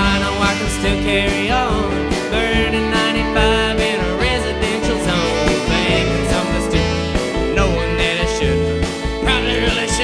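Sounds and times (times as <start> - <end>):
saxophone: 0.0 - 3.2, 4.2 - 8.6
country band playing: 0.0 - 10.0
fiddle: 0.0 - 10.0.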